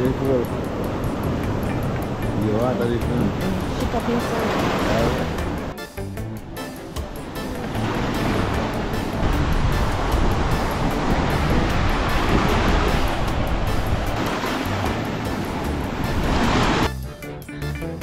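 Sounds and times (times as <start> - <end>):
background music: 0.0 - 18.0
surf breaking on rocky shore: 7.2 - 16.9.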